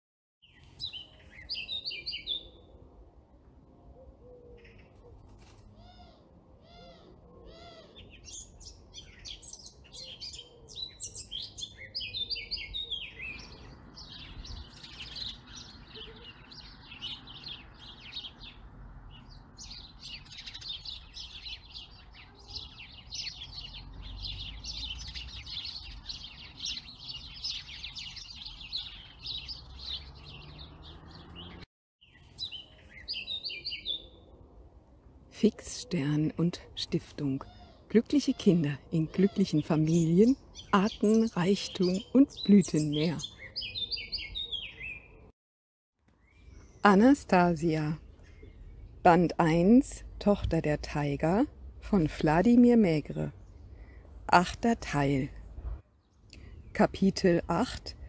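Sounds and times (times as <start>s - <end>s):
songbirds chirping: 0.4s - 45.3s, 46.0s - 58.0s.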